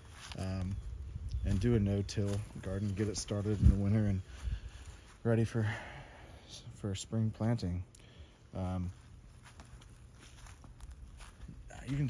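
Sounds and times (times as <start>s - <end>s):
footsteps on grass: 0.0s - 6.2s, 8.3s - 12.0s
man speaking: 1.4s - 4.3s, 5.2s - 5.9s, 8.5s - 9.0s, 11.5s - 12.0s.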